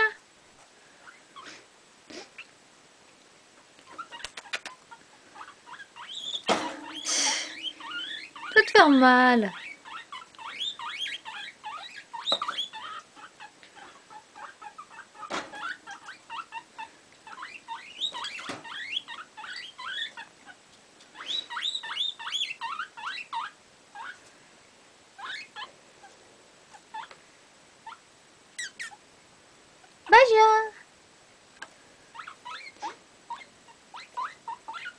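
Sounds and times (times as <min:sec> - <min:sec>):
guinea pig squeaky chattering: 0:03.8 - 0:24.2, 0:25.2 - 0:25.7, 0:26.8 - 0:27.2, 0:27.8 - 0:28.0, 0:28.6 - 0:29.0, 0:32.1 - 0:34.9.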